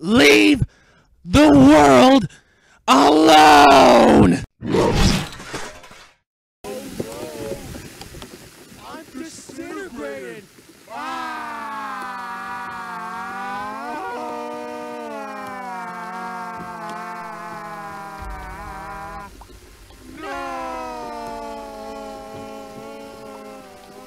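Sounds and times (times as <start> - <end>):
low hum: 16.3 - 24.0.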